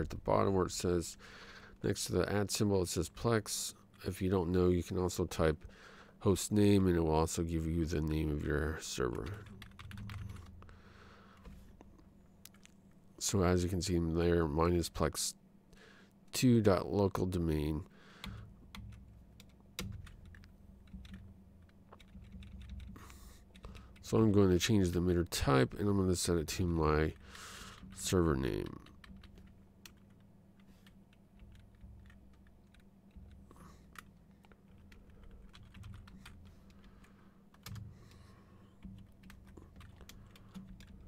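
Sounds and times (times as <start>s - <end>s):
low steady hum: 0.0s - 41.0s
computer keyboard typing: 9.1s - 10.6s, 18.2s - 24.0s, 27.7s - 37.9s, 38.8s - 41.0s.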